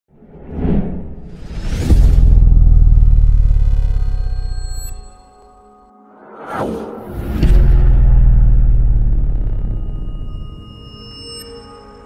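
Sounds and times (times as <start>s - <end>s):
whooshes: 0.1s - 5.0s, 6.1s - 8.8s
low rumbling drone: 0.6s - 5.4s, 6.3s - 11.1s
deep boom: 0.7s - 5.0s, 6.7s - 10.8s.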